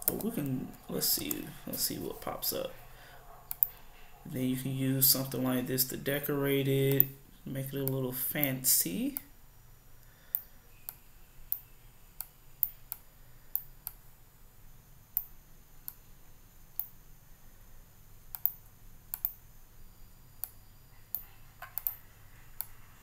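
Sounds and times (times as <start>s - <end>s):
faint low hum: 0.0s - 23.0s
computer mouse clicks: 3.5s - 3.8s, 10.0s - 14.0s, 15.2s - 16.0s, 18.3s - 19.4s, 20.4s - 22.8s.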